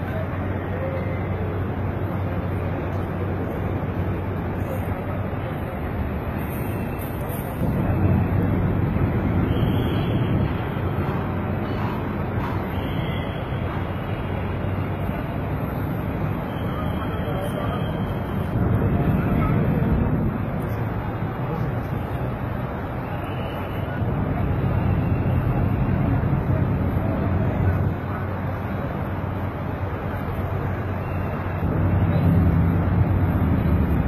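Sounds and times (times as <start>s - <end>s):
city traffic noise: 0.0s - 34.0s.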